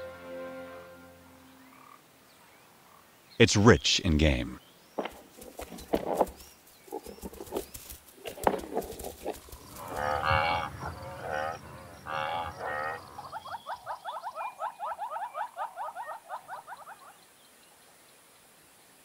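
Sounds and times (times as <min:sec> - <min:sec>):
faint steady background noise: 0:00.0 - 0:19.0
drawn-out wavering animal calls: 0:06.9 - 0:17.2
short rising animal notes: 0:09.4 - 0:14.0.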